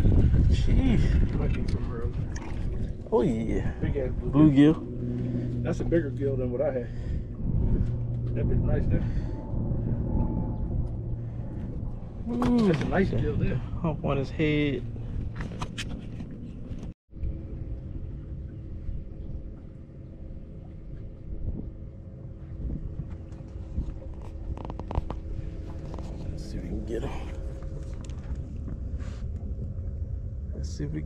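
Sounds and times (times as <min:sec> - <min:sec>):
faint steady hum: 0:00.0 - 0:31.0
wind rumbling on microphone: 0:00.0 - 0:31.0.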